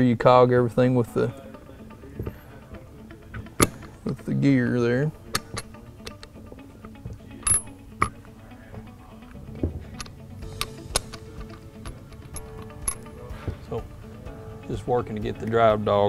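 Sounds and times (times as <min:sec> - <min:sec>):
faint background music: 0:00.0 - 0:16.0
metallic clicks and clinks: 0:09.9 - 0:13.1.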